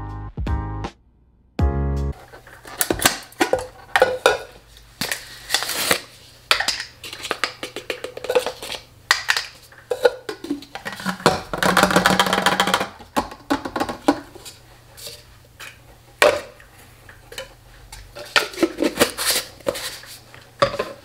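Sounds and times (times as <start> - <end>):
plastic containers clicking and knocking: 2.5 - 5.2, 6.5 - 14.6, 15.6 - 16.6, 17.3 - 20.0, 20.6 - 21.0.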